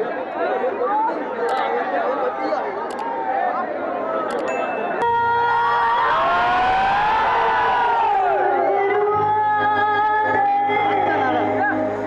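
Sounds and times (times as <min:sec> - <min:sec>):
crowd noise: 0:00.0 - 0:12.0
woman singing into microphone: 0:08.3 - 0:12.0.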